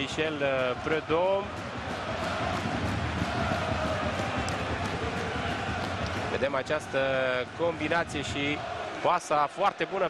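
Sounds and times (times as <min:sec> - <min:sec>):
fans singing or chanting: 0:00.0 - 0:09.1
stadium crowd noise: 0:00.0 - 0:10.0.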